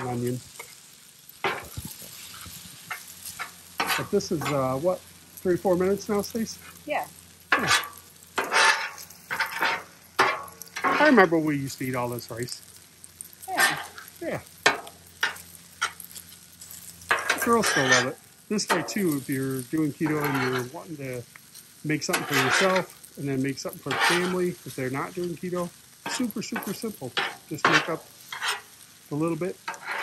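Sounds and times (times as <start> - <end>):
frying sizzle: 0.0 - 30.0
metal spatulas scraping griddle: 1.4 - 4.9, 7.5 - 11.4, 13.4 - 20.9, 21.6 - 24.9, 26.0 - 30.0.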